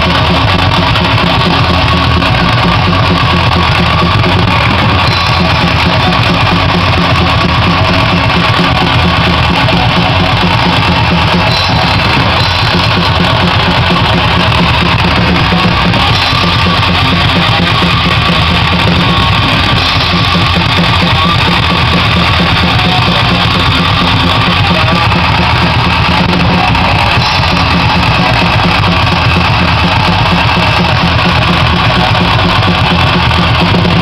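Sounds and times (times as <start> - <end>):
distorted electric guitar: 0.0 - 34.0
drum kit with crashing cymbals: 0.0 - 34.0.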